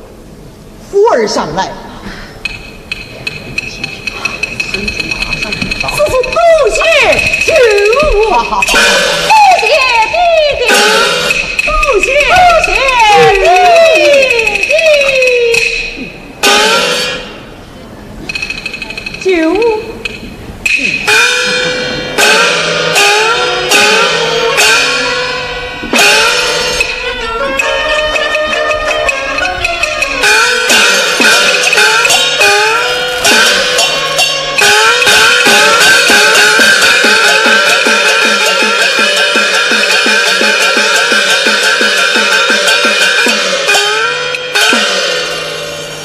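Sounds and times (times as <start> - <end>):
cymbals crashing: 2.3 - 46.0.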